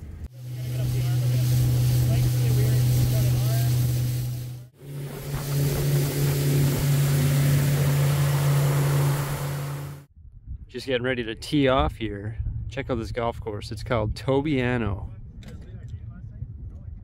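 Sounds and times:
motorboat engine droning: 0:00.0 - 0:10.1
wind and water rushing: 0:00.4 - 0:10.1.

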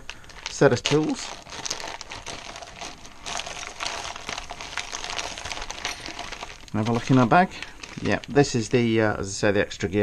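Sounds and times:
plastic bags crinkling: 0:00.0 - 0:09.0.

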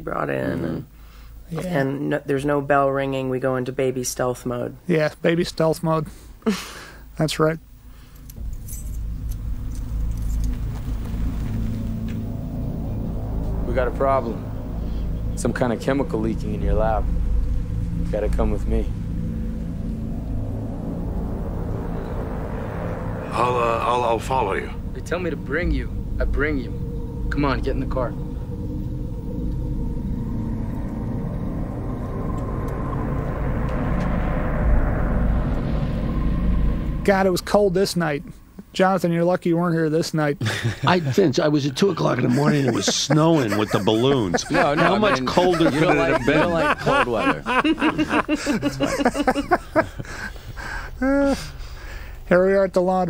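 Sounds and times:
low steady rumble: 0:07.0 - 0:40.0, 0:40.6 - 0:53.0
rushing swell: 0:07.8 - 0:38.8, 0:41.9 - 0:53.0
light metallic jingles: 0:08.1 - 0:10.6.

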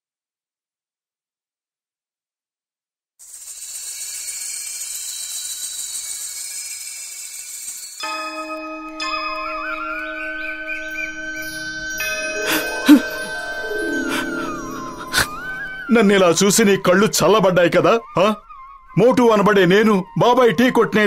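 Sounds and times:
cartoon background music: 0:08.0 - 0:21.0
high shimmering swoosh: 0:11.0 - 0:16.2.

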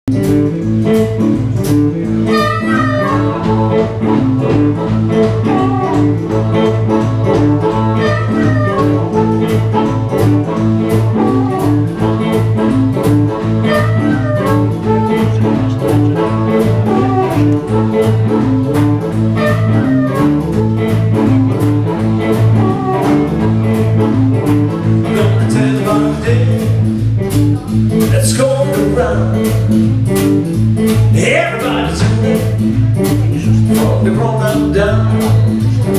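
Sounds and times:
bass guitar: 0:00.0 - 0:35.9
drums: 0:00.0 - 0:35.9
electric guitar: 0:00.1 - 0:35.9
harmonica bending phrases: 0:00.2 - 0:35.9.

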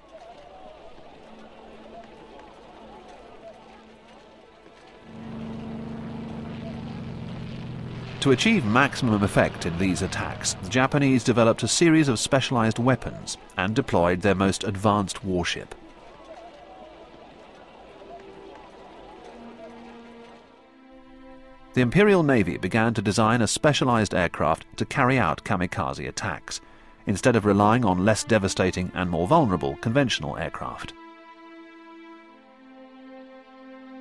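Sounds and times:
faint indistinct voices: 0:00.0 - 0:07.5, 0:08.3 - 0:20.5
low engine drone: 0:05.0 - 0:13.6
low held note: 0:05.1 - 0:11.2.

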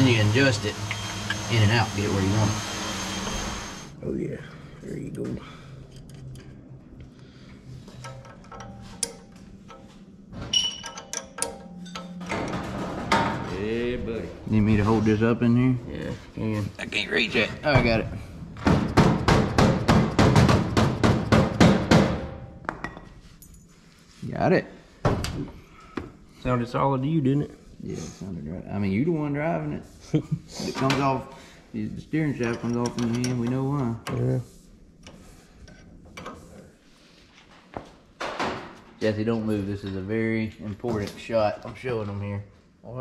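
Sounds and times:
hand tool scraping and clicking metal: 0:07.9 - 0:09.9, 0:32.4 - 0:34.2.

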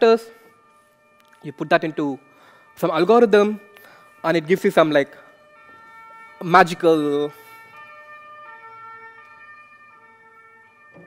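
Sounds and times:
faint two-tone siren: 0:00.0 - 0:11.0.

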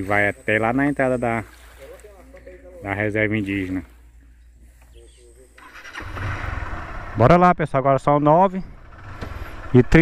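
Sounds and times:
motorcycle engine starting and running: 0:05.6 - 0:10.0.

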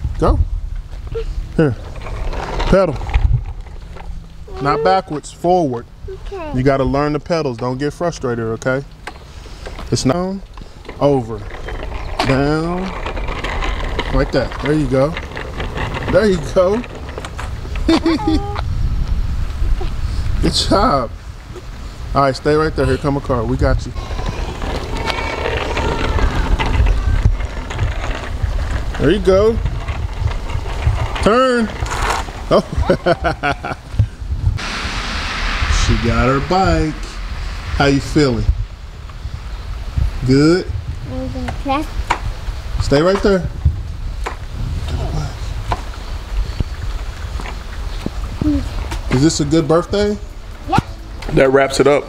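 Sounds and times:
wind buffeting microphone: 0:00.0 - 0:09.0, 0:09.7 - 0:52.0
bicycle rolling over wet concrete: 0:00.7 - 0:34.4, 0:39.1 - 0:52.0
tyres hissing on wet pavement: 0:14.1 - 0:29.6, 0:30.9 - 0:43.4.

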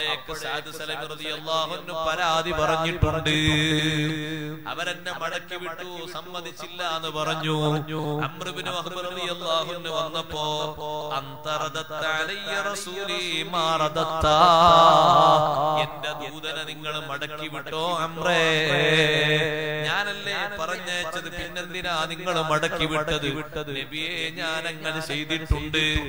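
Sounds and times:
man chanting melodically: 0:00.0 - 0:26.0.

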